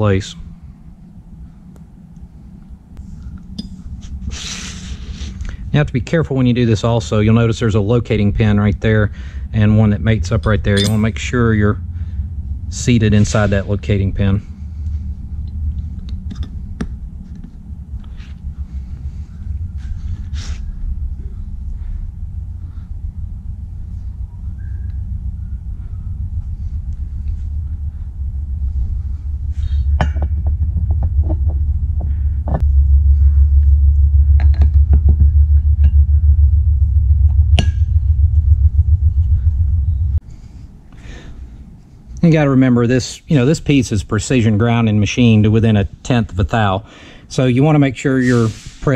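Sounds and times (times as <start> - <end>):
pulsing machine rumble: 0.0 - 42.2.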